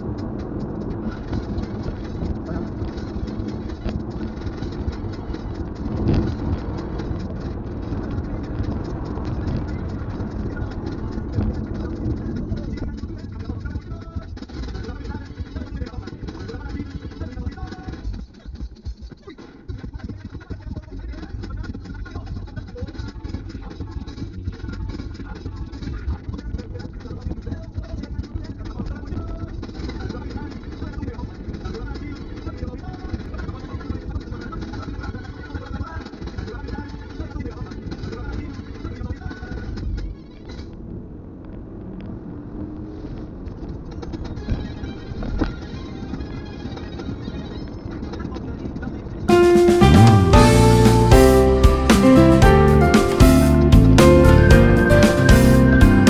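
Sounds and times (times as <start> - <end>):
car road and engine noise: 0.0 - 16.4, 37.4 - 49.3.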